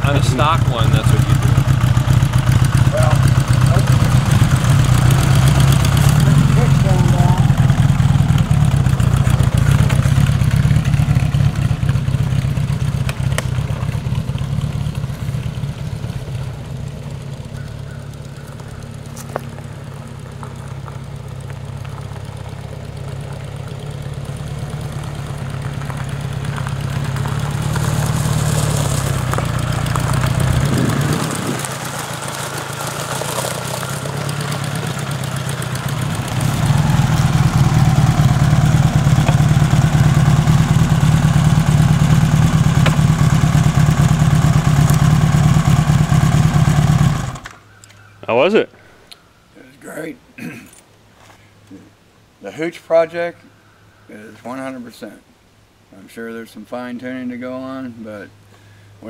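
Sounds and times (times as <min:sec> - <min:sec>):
motorcycle engine running: 0:00.0 - 0:47.8.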